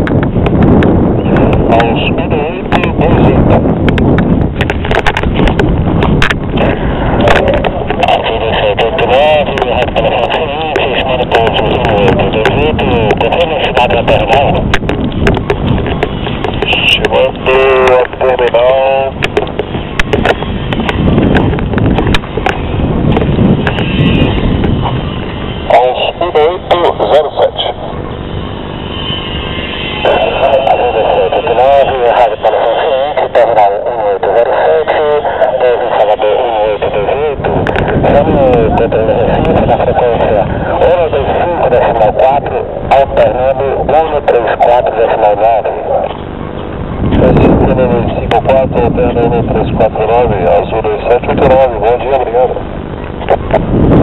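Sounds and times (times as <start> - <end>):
microphone handling rumble: 0.0 - 54.0
wind on microphone: 0.0 - 54.0
garbled radio voice transmissions: 1.2 - 3.7, 4.6 - 28.1, 29.2 - 53.8.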